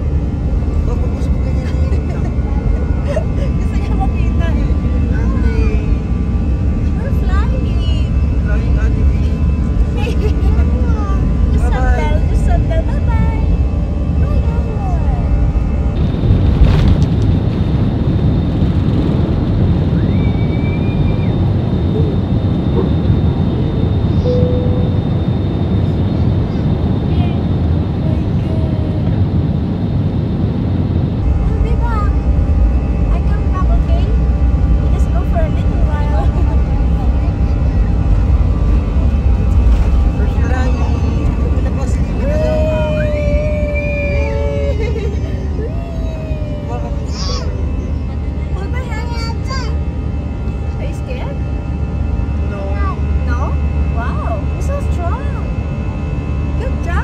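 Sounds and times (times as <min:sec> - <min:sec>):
faint passenger voices: 0:00.0 - 0:16.0, 0:20.0 - 0:57.0
jet engine and airflow roar: 0:00.0 - 0:57.0.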